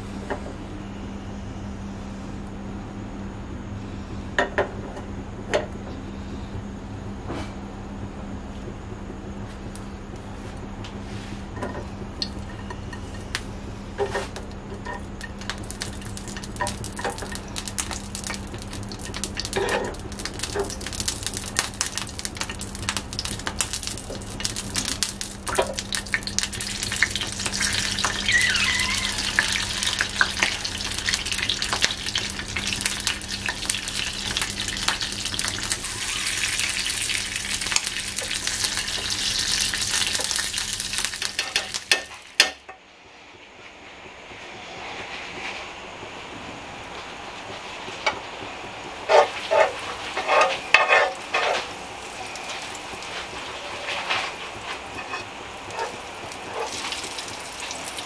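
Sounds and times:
tomatoes sizzling in hot oil: 14.9 - 42.6, 49.1 - 58.0.

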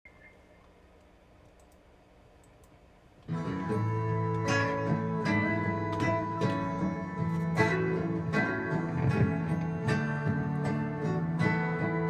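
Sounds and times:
faint clicks: 0.1 - 3.3
low room hum: 0.1 - 12.0.

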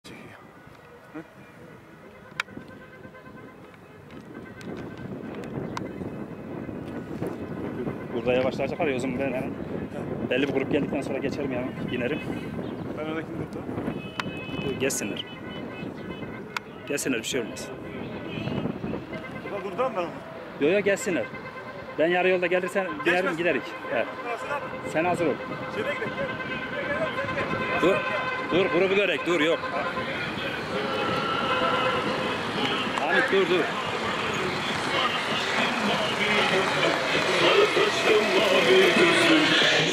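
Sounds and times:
wind buffeting microphone: 0.1 - 22.0, 23.1 - 39.9
cars approaching: 0.3 - 39.9.

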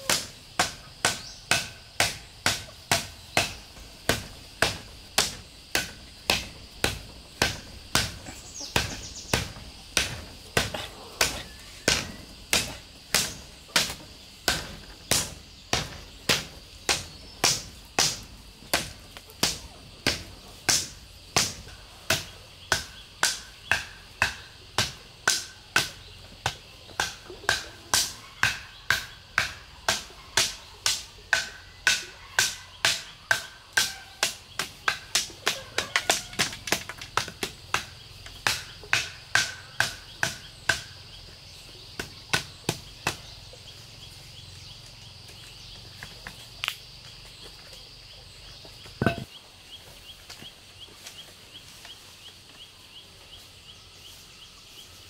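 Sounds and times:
wooden club pounding stakes: 0.0 - 41.2, 41.8 - 43.4, 48.9 - 49.3.

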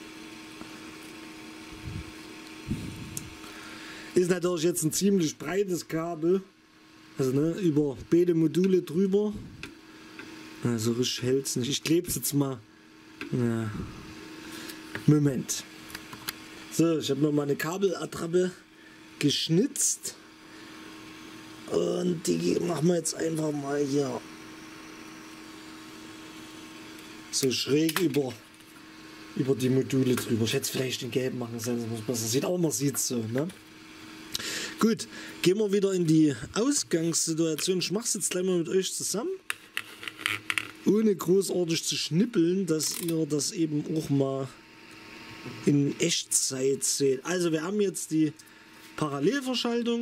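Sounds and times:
steady electrical hum: 0.0 - 50.0.

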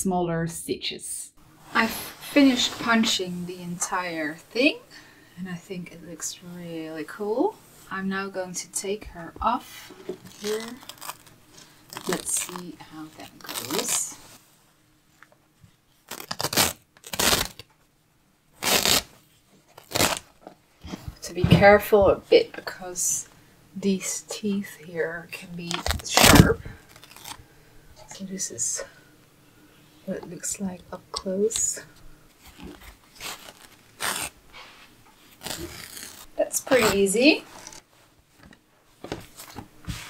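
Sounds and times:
fabric ripping off gripper teeth: 10.2 - 12.6, 16.0 - 17.7, 18.6 - 19.1, 19.7 - 20.3, 25.7 - 27.4, 32.5 - 34.4, 35.3 - 37.8.

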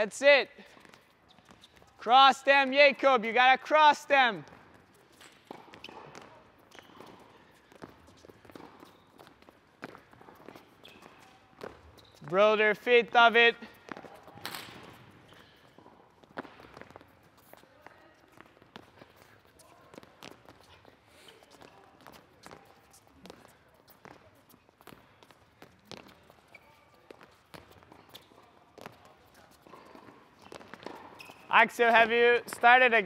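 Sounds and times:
footfalls on indoor court: 0.0 - 33.0.

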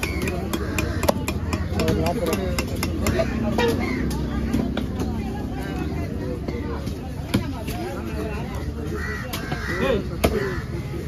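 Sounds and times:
crows cawing: 0.0 - 4.3, 8.6 - 11.0
people talking in background: 0.0 - 11.0.

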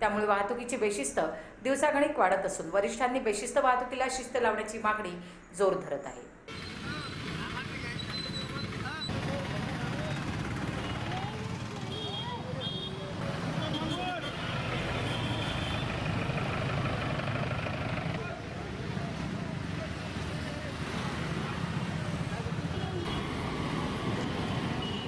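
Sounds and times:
people talking: 0.0 - 10.2
motorcycle and scooter engines passing: 6.5 - 25.0.

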